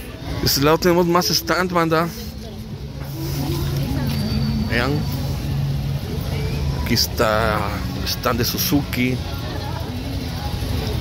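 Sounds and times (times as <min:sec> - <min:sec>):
faint voices: 0:00.0 - 0:11.0
low engine hum: 0:00.0 - 0:11.0.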